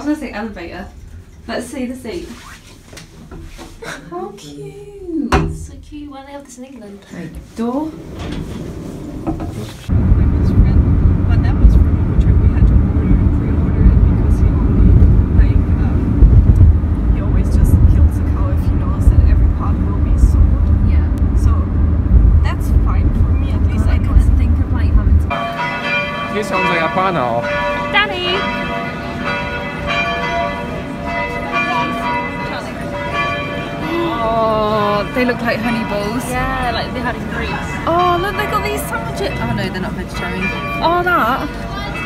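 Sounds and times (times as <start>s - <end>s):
city street bustle: 7.7s - 42.0s
car engine and road rumble: 9.2s - 25.3s
church bells ringing: 22.6s - 42.0s.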